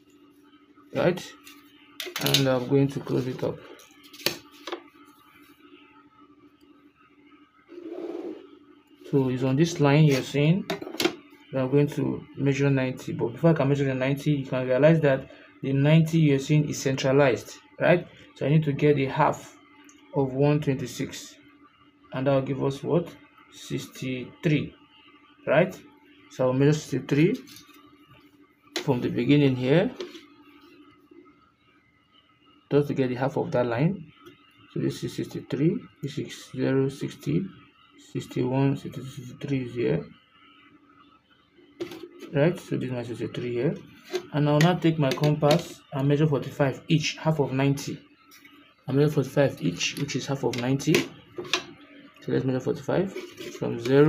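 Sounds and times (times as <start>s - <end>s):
plastic scraping slide on paper: 7.7s - 8.5s.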